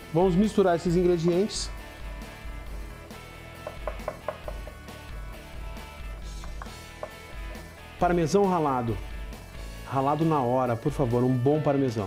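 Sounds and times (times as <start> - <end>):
soft background music: 0.0 - 12.0
pestle stirring thick dressing: 1.8 - 4.9
light knocks against wooden bowl: 3.6 - 4.8, 6.4 - 7.3.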